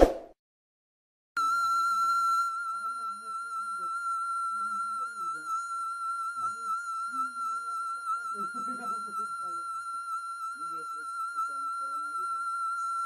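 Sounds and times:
steady high tone: 1.4s - 13.0s
people talking quietly: 2.8s - 12.8s.

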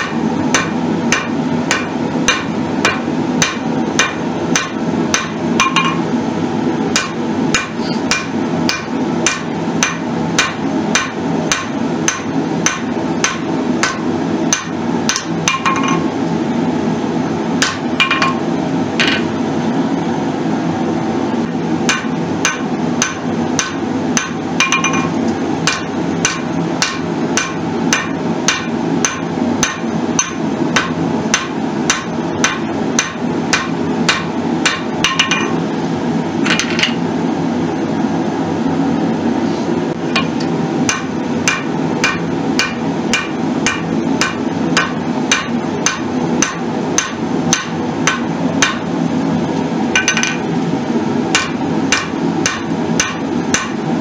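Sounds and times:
hammer striking steel on anvil: 0.0s - 6.1s, 6.9s - 16.1s, 17.6s - 19.4s, 21.9s - 35.6s, 40.0s - 48.9s, 50.0s - 50.5s, 51.3s - 53.8s.

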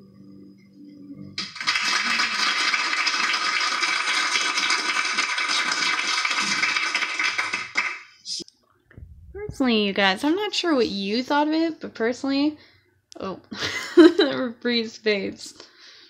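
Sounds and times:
audience applause: 1.4s - 8.1s.

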